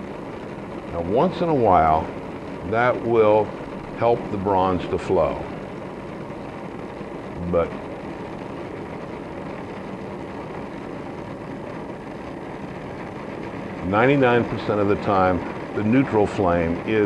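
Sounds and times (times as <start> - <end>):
gas torch hissing: 0.0 - 17.0.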